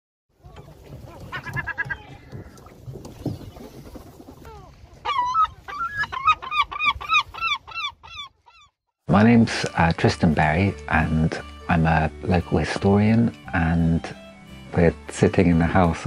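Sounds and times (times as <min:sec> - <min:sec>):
bird honking calls: 0:01.0 - 0:03.8.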